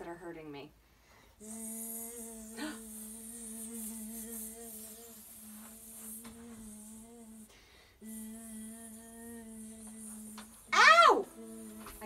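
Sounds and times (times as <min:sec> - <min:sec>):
child humming: 0:01.4 - 0:12.0.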